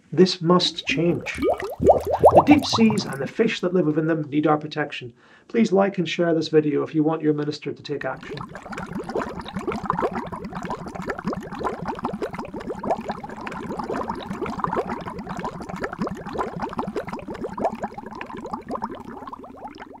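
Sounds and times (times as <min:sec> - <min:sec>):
underwater bubbling: 0:00.6 - 0:03.4, 0:08.2 - 0:20.0.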